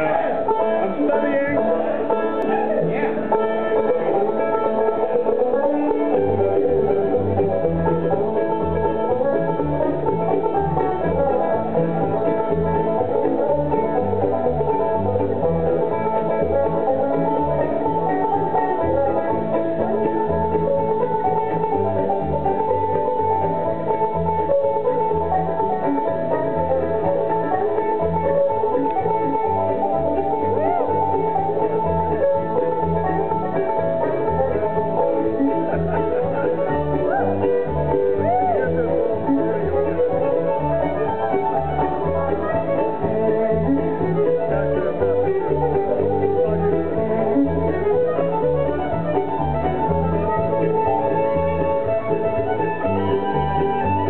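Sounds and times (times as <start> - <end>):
bluegrass band playing: 0.0 - 54.0
upright bass steady beat: 0.0 - 54.0.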